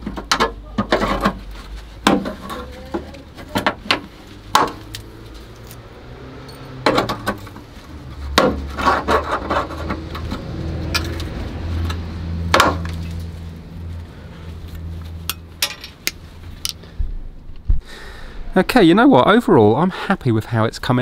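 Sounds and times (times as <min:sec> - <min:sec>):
tool prying rusty metal: 0:00.0 - 0:01.4, 0:02.0 - 0:02.6, 0:03.4 - 0:05.0, 0:06.8 - 0:07.6, 0:08.3 - 0:11.2, 0:12.5 - 0:13.0
metal clicks knocks and scrapes: 0:06.8 - 0:13.3.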